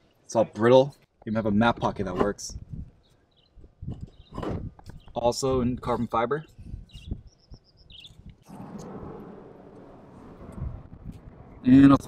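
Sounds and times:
small bird chirping: 3.0 - 5.2, 6.8 - 8.5.

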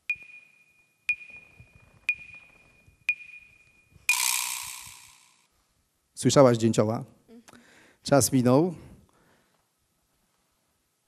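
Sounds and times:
short high beeps: 0.0 - 5.4.

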